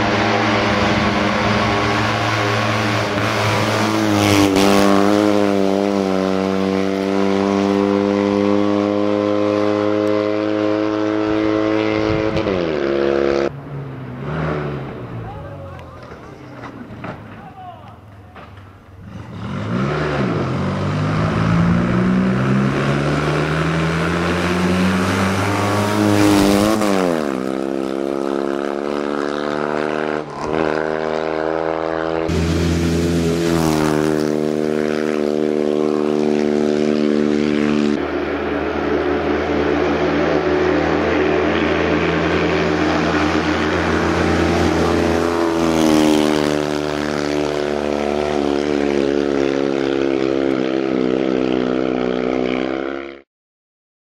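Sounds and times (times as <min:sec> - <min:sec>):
rally car engine revving: 0:00.0 - 0:17.3, 0:18.4 - 0:53.2.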